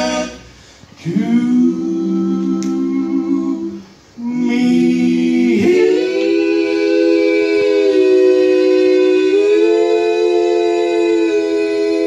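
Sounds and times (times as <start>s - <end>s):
men singing a cappella harmony: 0.0s - 12.0s.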